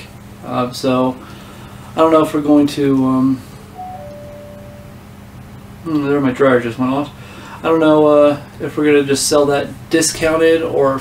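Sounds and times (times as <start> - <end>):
clothes dryer alert tone: 3.7 - 5.4.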